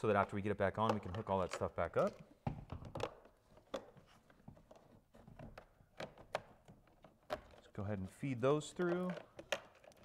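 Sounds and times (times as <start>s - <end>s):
plastic panel rustling: 0.0s - 10.0s.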